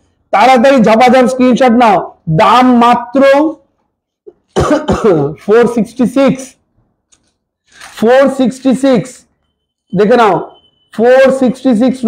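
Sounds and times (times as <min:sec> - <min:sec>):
man speaking: 0:00.3 - 0:03.7, 0:04.6 - 0:06.6, 0:07.8 - 0:09.3, 0:09.9 - 0:12.0.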